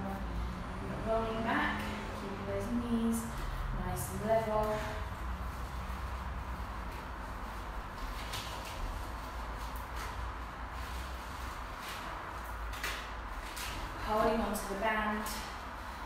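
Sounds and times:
low hum and hiss: 0.0s - 16.0s
rustles on exercise mat: 1.2s - 16.0s.

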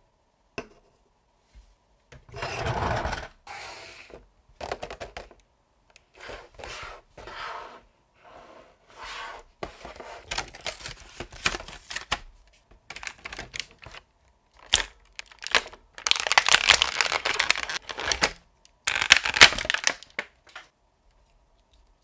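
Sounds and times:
plastic packaging crinkling: 10.3s - 12.2s, 12.9s - 20.7s.

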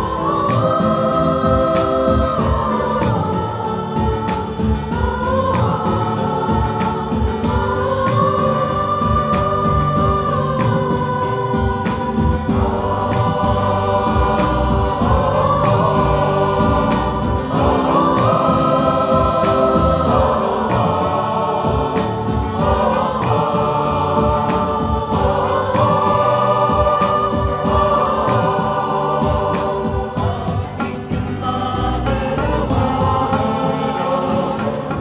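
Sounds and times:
choir singing held chords: 0.0s - 35.0s
electronic keyboard with beat: 0.0s - 35.0s.

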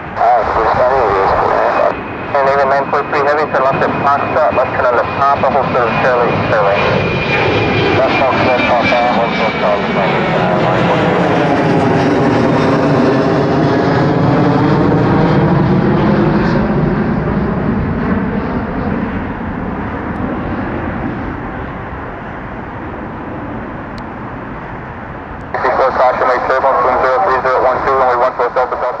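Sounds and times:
jet engines running: 0.0s - 29.0s
radio-like voice: 0.2s - 7.0s, 7.8s - 11.4s, 25.5s - 29.0s.

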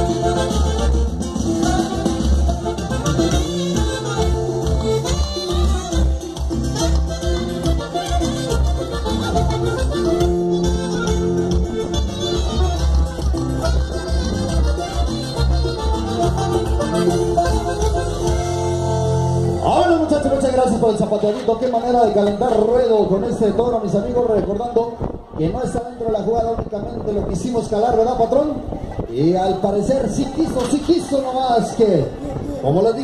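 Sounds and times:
lively band dance music: 0.0s - 24.7s.

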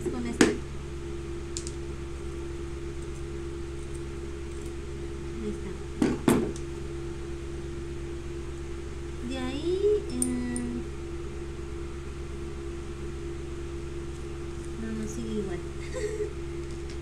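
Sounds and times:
electric fan humming: 0.0s - 17.0s.

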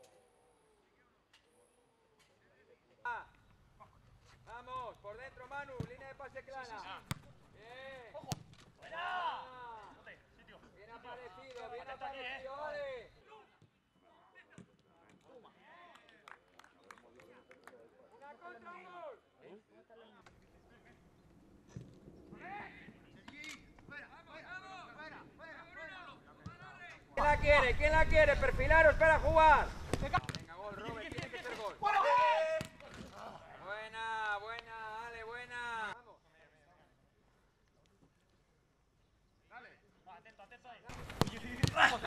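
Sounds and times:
football being kicked: 7.0s - 7.4s, 8.2s - 8.7s, 40.9s - 42.0s
man shouting: 31.8s - 32.6s, 41.7s - 42.0s.

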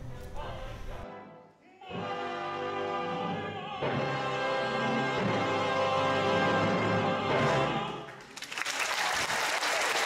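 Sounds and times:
music: 0.0s - 8.3s
audience applauding: 8.1s - 10.0s.

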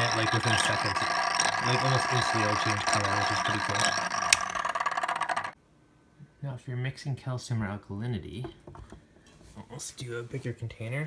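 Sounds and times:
fan humming: 0.0s - 5.6s
stir bar rattling in glass vial: 0.0s - 5.6s.

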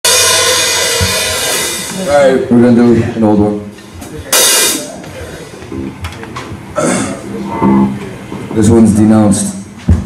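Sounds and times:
cymbal wash: 0.1s - 2.1s
electric guitars ringing: 0.1s - 2.5s, 4.3s - 9.5s.

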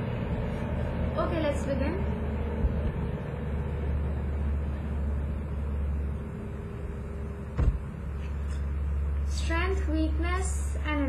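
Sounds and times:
low rumble of traffic: 0.0s - 11.0s
short knock: 7.6s - 7.9s.

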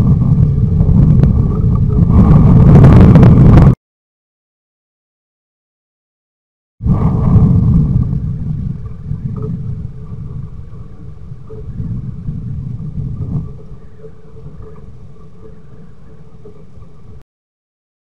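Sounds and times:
low rumble: 0.0s - 3.8s, 6.8s - 17.2s
faint steady hum: 6.9s - 17.2s.

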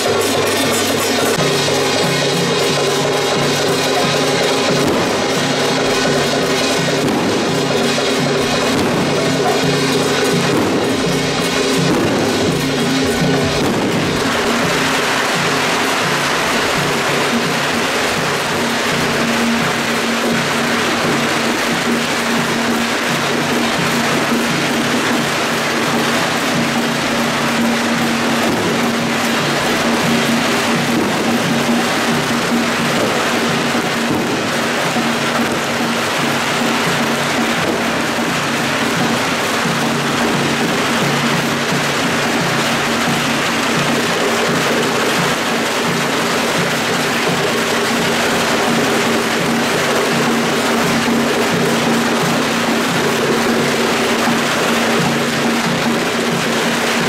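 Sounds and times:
firecrackers crackling: 0.0s - 57.0s
gongs and drums: 0.0s - 57.0s.

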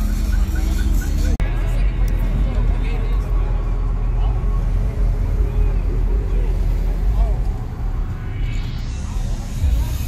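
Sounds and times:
voices chattering: 0.0s - 10.0s.

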